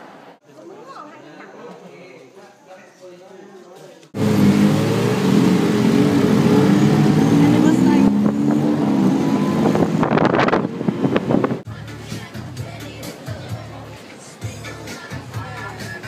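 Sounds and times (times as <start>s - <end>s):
auto rickshaw engine running: 4.2s - 11.7s.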